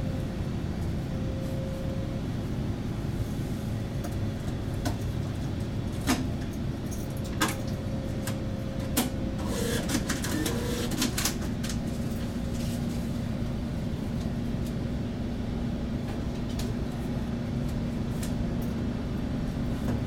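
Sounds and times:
bus engine idling: 0.0s - 20.0s.

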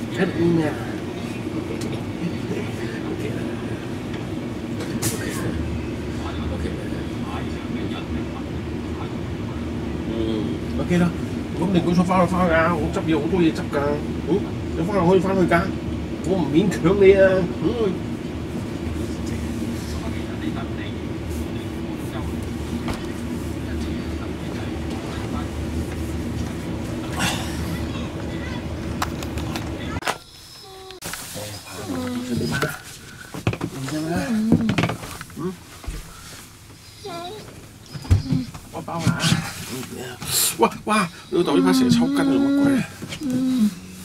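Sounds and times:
faint voices: 19.1s - 36.2s.

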